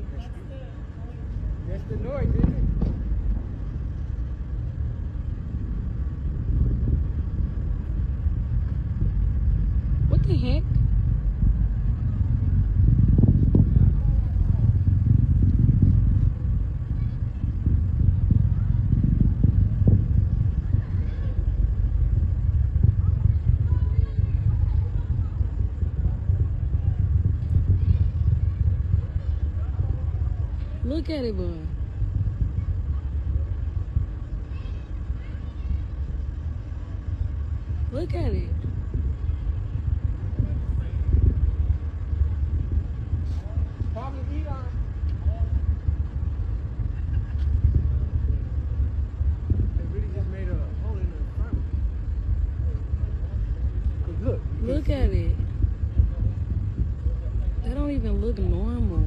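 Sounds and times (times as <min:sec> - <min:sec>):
faint voices: 0:00.0 - 0:59.0
low rumble: 0:00.0 - 0:59.0.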